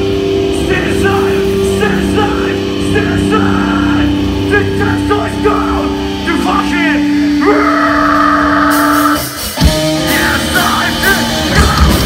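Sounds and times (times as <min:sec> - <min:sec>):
drums and cymbals: 0:00.0 - 0:12.0
electric guitar notes sliding: 0:00.0 - 0:12.0
rock band playing live: 0:00.0 - 0:12.0.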